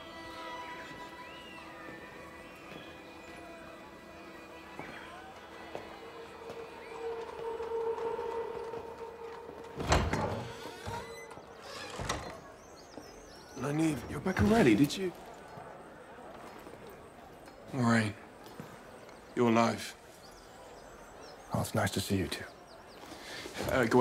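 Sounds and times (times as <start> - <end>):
dramatic film score: 4.8 - 12.2.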